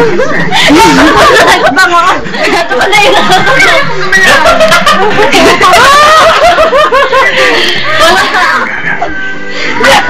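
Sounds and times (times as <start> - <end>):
person laughing: 3.6 - 7.7.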